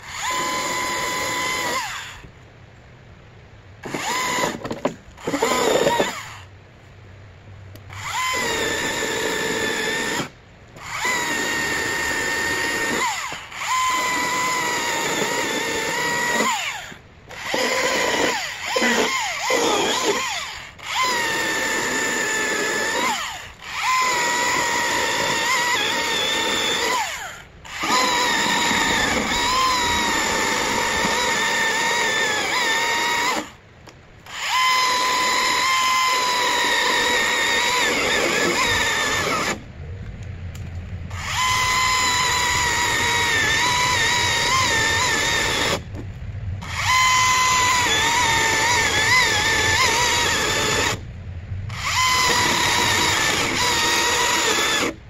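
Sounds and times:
electric chainsaw cutting wood: 0:00.0 - 0:02.3, 0:03.8 - 0:06.5, 0:07.9 - 0:33.6, 0:34.2 - 0:39.7, 0:41.1 - 0:46.0, 0:46.6 - 0:51.0, 0:51.7 - 0:55.0.

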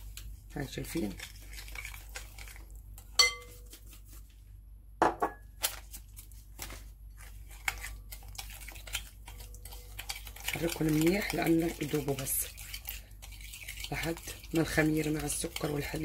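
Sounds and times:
spoon scraping glass bowl: 0:00.9 - 0:03.8, 0:07.6 - 0:16.0
sharp ringing clink: 0:03.2 - 0:03.5.

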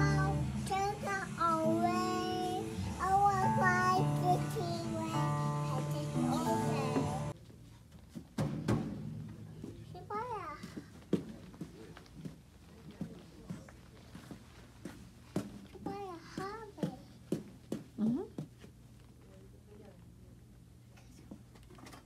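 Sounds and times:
child singing high notes: 0:00.0 - 0:07.3
music: 0:00.0 - 0:07.4
drum hits: 0:08.4 - 0:10.0.

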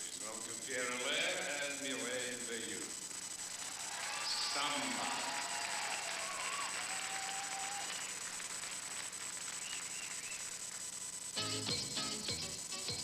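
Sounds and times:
audience clapping: 0:03.6 - 0:10.9.

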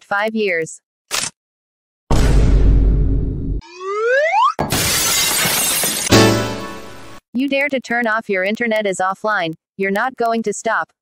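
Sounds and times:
glass breaking crash: 0:04.6 - 0:07.2.

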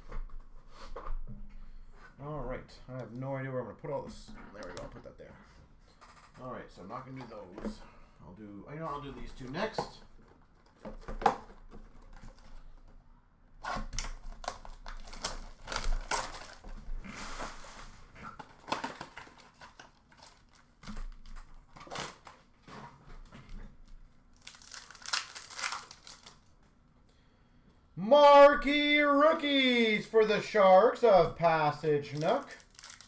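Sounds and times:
card wrappers tearing: 0:14.0 - 0:16.6, 0:24.3 - 0:26.5, 0:32.0 - 0:33.0.

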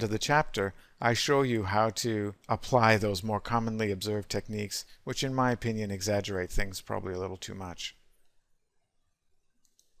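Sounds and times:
computer mouse clicks: 0:09.6 - 0:10.0.

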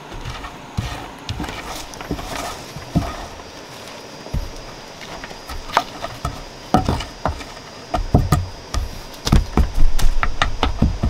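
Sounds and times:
log knocking on sandy ground: 0:00.0 - 0:11.0.

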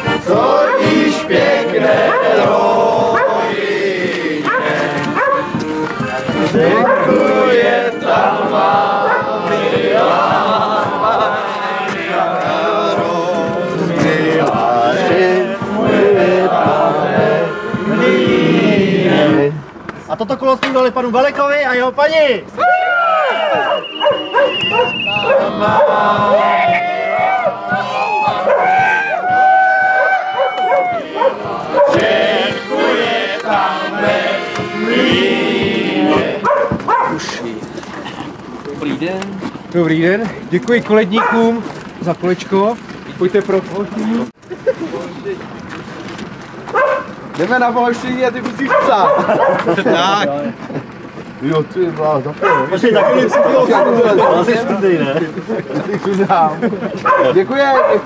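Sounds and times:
accordion playing held notes: 0:00.0 - 0:19.6, 0:23.4 - 0:29.3, 0:30.4 - 0:36.5
bass drum: 0:00.0 - 0:19.6, 0:24.0 - 0:37.2
voices: 0:00.0 - 0:58.0
dog barking: 0:00.7 - 0:00.9, 0:02.1 - 0:02.4, 0:03.1 - 0:03.4, 0:04.5 - 0:05.6, 0:06.8 - 0:07.2, 0:09.0 - 0:09.3, 0:23.6 - 0:26.0, 0:28.4 - 0:28.7, 0:30.0 - 0:32.0, 0:36.4 - 0:37.2, 0:41.2 - 0:41.5, 0:46.7 - 0:47.1, 0:48.7 - 0:49.7, 0:52.4 - 0:54.5, 0:57.0 - 0:58.0.

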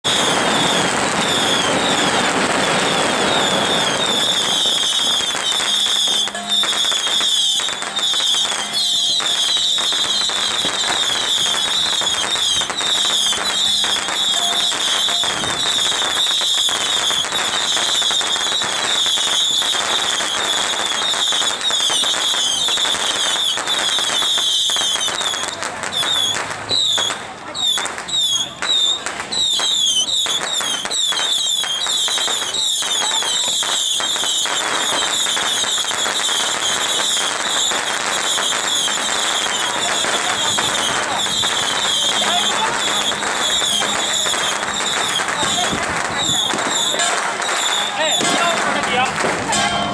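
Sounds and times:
firecrackers crackling: 0:00.0 - 0:49.9.

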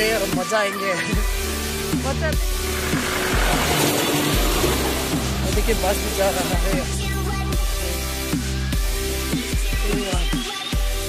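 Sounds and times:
pop track with heavy bass: 0:00.0 - 0:11.0.

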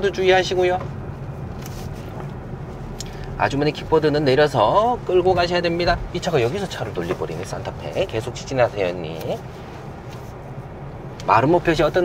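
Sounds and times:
car engine rumble: 0:00.0 - 0:12.0.

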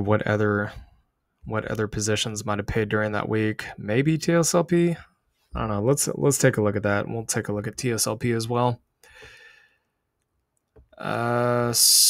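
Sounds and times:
man speaking: 0:00.0 - 0:08.8, 0:11.0 - 0:12.0
narrator breathing: 0:09.0 - 0:10.0.

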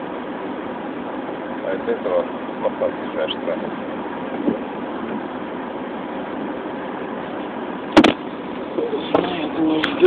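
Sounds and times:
car cabin noise in traffic: 0:00.0 - 0:10.0
sharp knock: 0:08.0 - 0:08.2.

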